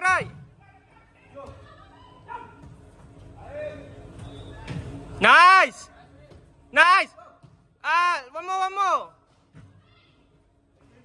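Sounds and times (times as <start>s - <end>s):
low hum of hall: 0.0s - 11.0s
players shouting and calling: 0.0s - 11.0s.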